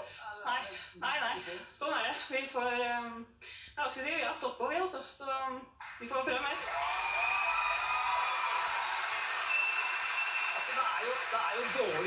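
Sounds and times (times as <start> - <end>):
audience applause: 6.4 - 12.0.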